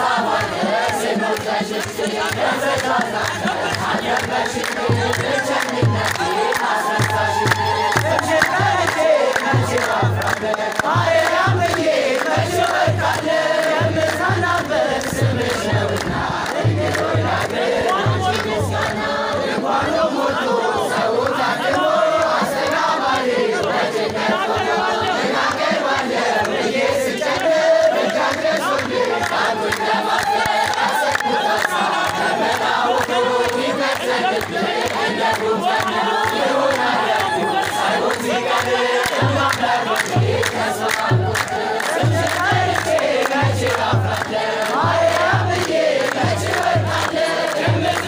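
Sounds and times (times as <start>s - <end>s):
hand clapping: 0.0s - 19.1s, 25.4s - 48.0s
crowd singing together: 0.0s - 48.0s
low drum beats: 0.4s - 20.0s, 39.0s - 48.0s.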